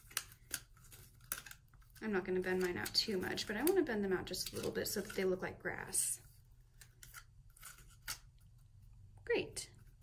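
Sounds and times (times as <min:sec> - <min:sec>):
paper crinkling: 0:00.0 - 0:05.5, 0:06.7 - 0:08.4.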